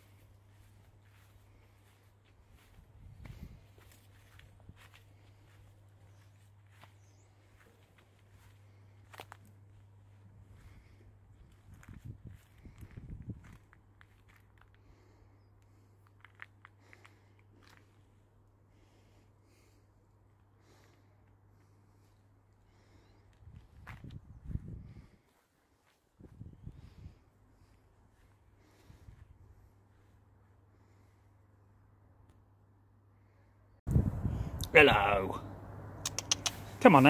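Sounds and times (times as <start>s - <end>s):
faint clicks: 36.0s - 36.6s.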